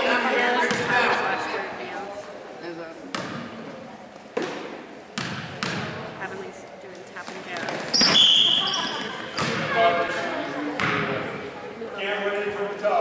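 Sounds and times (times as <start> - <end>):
murmur of spectators: 0.0 - 13.0
whistle blast: 8.0 - 9.0.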